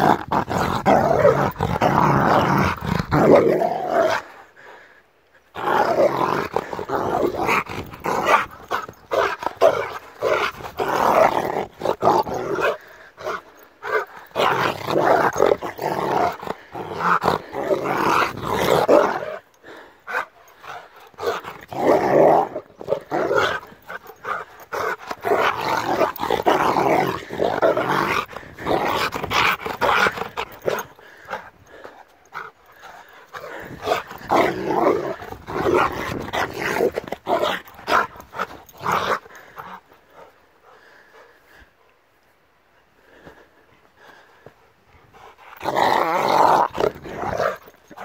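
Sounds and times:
dog growling: 0.0s - 4.4s, 5.5s - 40.3s, 45.2s - 48.0s.

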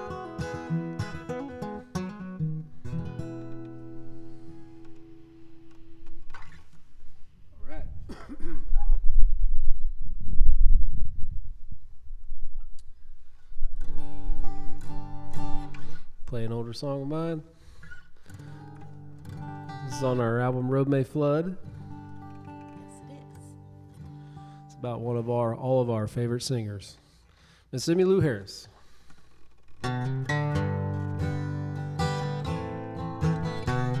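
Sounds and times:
acoustic guitar playing: 0.0s - 7.5s, 12.6s - 26.4s, 28.8s - 34.0s.

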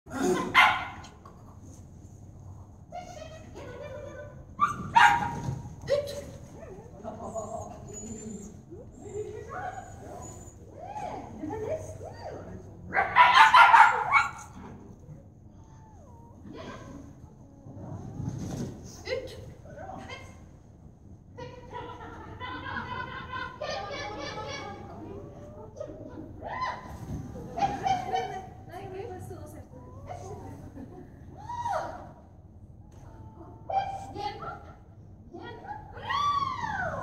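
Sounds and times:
small dog barking: 13.0s - 14.5s.

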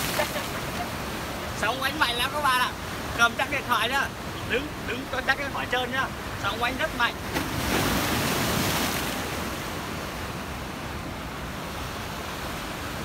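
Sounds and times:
sea surf washing on concrete: 0.0s - 13.0s.

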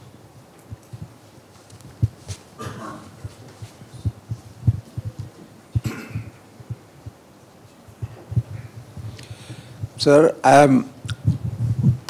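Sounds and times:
microphone handling thumps: 0.7s - 7.2s, 7.9s - 10.0s, 11.0s - 12.0s.

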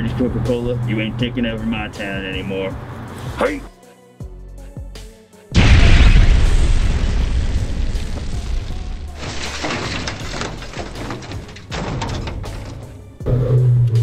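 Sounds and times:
music: 0.0s - 14.0s
loud booms: 5.6s - 12.5s.

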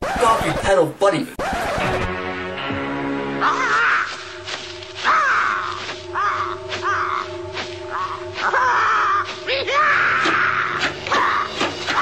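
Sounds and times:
cartoon buzzard cawing: 3.4s - 4.4s, 5.0s - 12.0s.

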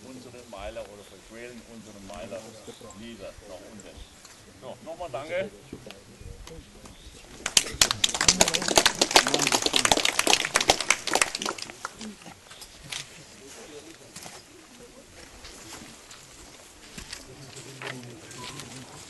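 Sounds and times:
crowd clapping: 7.4s - 12.2s.

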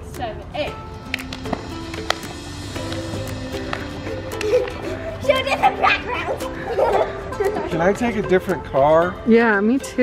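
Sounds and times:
music with held notes: 0.0s - 10.0s.

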